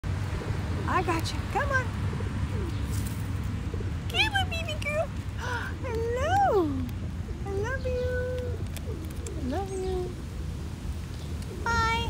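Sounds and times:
pigeon cooing: 0.2 - 10.3, 11.4 - 12.0.

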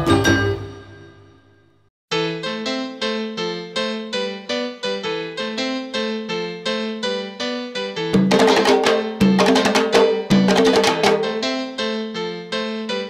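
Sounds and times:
salsa band playing: 8.2 - 11.6
sharp percussion hits: 8.2 - 11.6.

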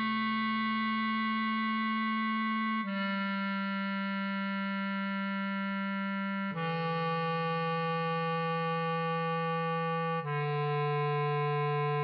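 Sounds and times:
bass clarinet long note: 0.0 - 12.0.

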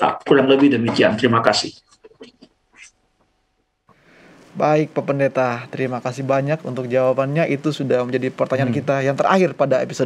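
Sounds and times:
low background hiss: 3.9 - 10.0.

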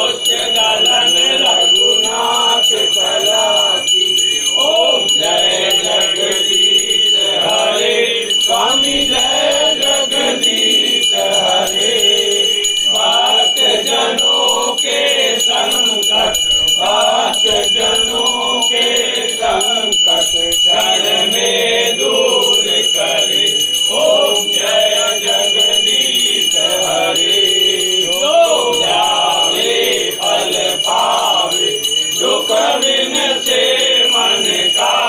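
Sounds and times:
brass hand bell ringing: 0.0 - 35.0
group singing a hymn: 0.0 - 35.0.

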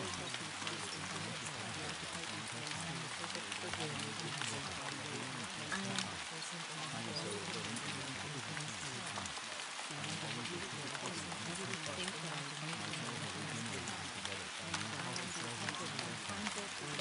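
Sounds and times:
murmur of voices: 0.0 - 17.0
raindrop ticks: 0.0 - 17.0
steady rain: 0.0 - 17.0.

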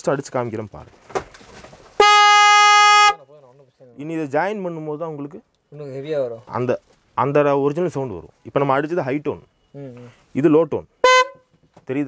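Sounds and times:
car horn blaring: 2.0 - 3.3, 11.0 - 11.6.

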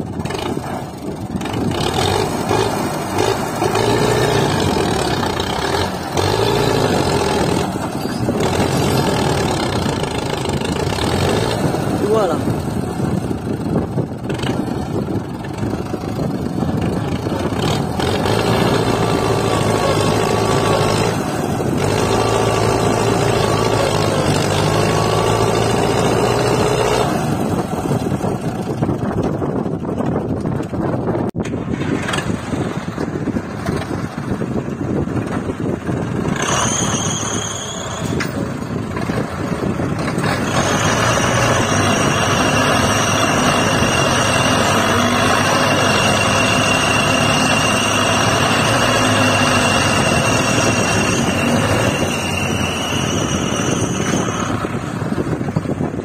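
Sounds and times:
tractor engines running under load: 0.0 - 56.0.

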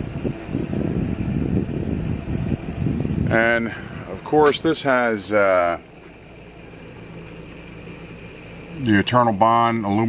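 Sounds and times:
low mechanical hum: 0.0 - 10.0.

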